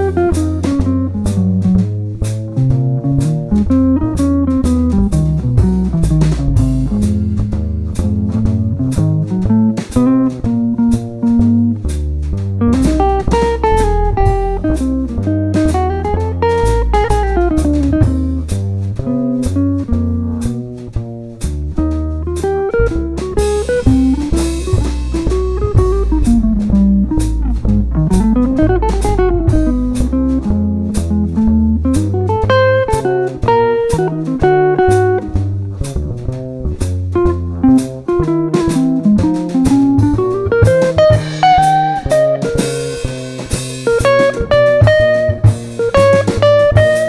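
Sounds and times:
electric guitar lines: 0.0s - 21.2s, 21.8s - 47.0s
drum kit: 0.0s - 47.0s
plucked upright bass: 0.0s - 47.0s.

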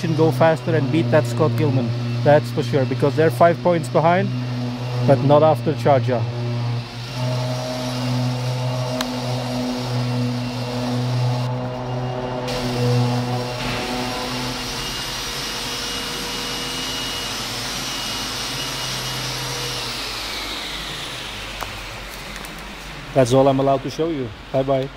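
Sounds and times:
machine humming and whirring: 0.0s - 24.9s.

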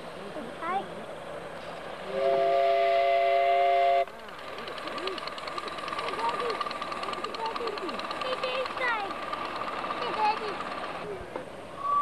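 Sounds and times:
steam locomotive whistle chord: 11.8s - 12.0s.

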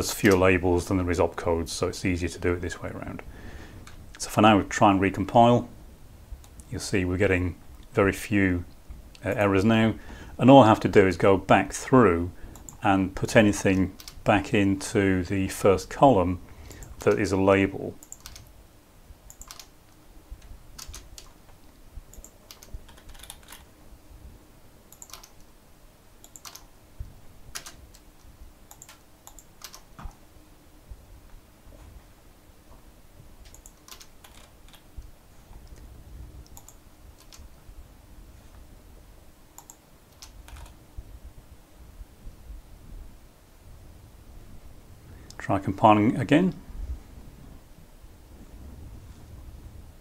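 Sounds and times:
low room rumble: 0.0s - 50.0s
computer keyboard clicks: 13.7s - 14.2s, 18.0s - 18.5s, 19.3s - 19.7s, 20.8s - 21.4s, 22.2s - 23.7s, 24.9s - 25.5s, 26.2s - 26.7s, 27.5s - 28.1s, 28.7s - 30.2s, 33.4s - 34.8s, 36.5s - 37.5s, 39.6s - 40.8s.

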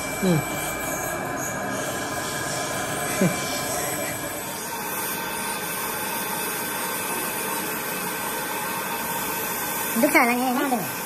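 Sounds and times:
machinery humming with high whine: 0.0s - 11.0s.

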